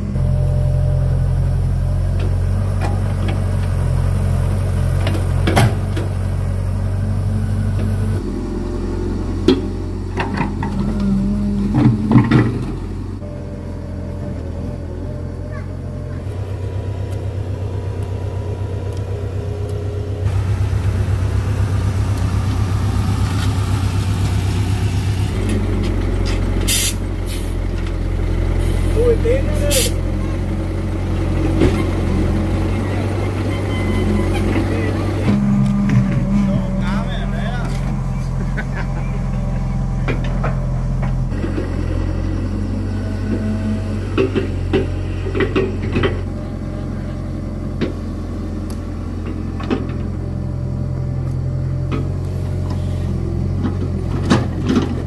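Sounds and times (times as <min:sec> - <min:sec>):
excavator diesel engine running: 0:00.0 - 0:55.0.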